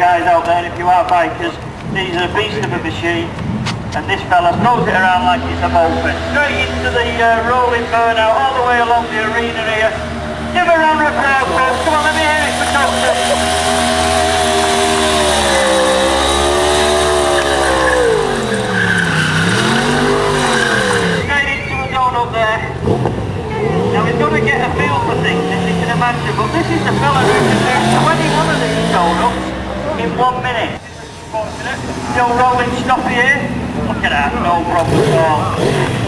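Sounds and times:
motorcycle engine revving: 1.8 - 21.3, 22.7 - 30.2, 31.0 - 36.0.

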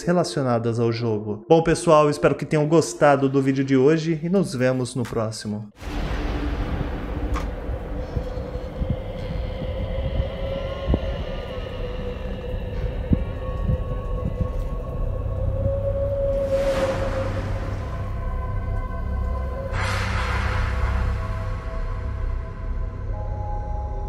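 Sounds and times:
hissing swell: 5.8 - 23.2
dark ambient music drone: 5.8 - 24.0.

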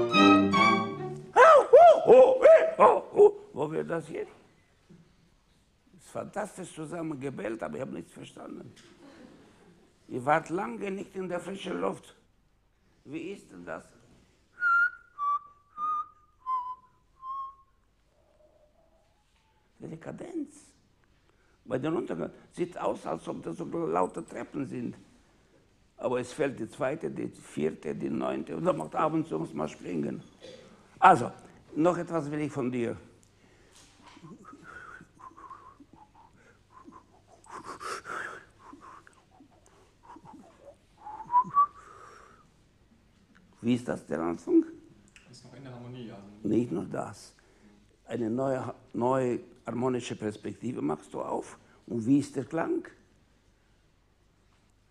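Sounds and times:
violin bowed notes: 0.0 - 1.4
person whistling: 14.6 - 18.6, 34.2 - 39.2, 40.0 - 42.4.

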